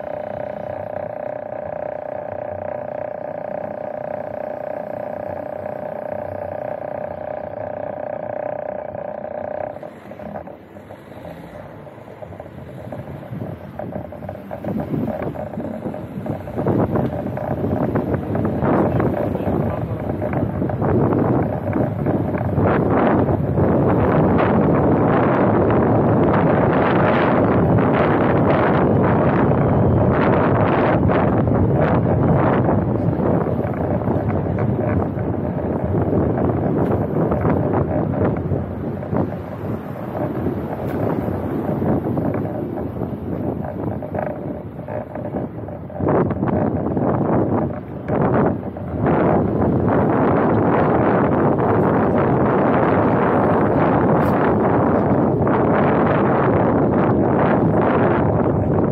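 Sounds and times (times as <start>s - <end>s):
road noise: 0.0s - 58.9s
wind rushing over microphone: 0.0s - 58.9s.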